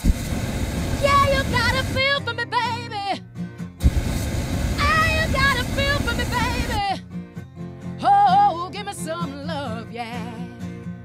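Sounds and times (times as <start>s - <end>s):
propane burner roar: 0.0s - 2.5s, 3.8s - 6.9s.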